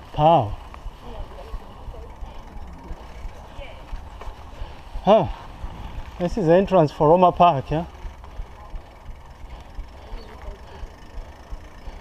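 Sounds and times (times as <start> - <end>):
bicycle mechanical clicking: 0.0 - 12.0
low rumble of wind and road: 0.0 - 12.0.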